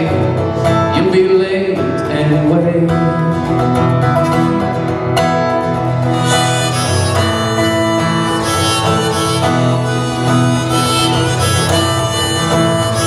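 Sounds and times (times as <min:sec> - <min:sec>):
acoustic guitar strumming blues: 0:00.0 - 0:13.0
harmonica long notes: 0:06.0 - 0:13.0.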